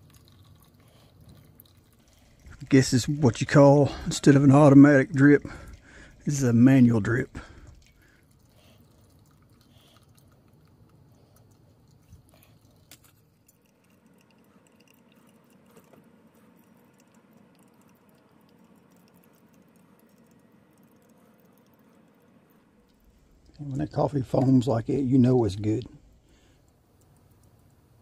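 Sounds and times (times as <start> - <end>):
coffee dripping into a tumbler: 0.0 - 28.0.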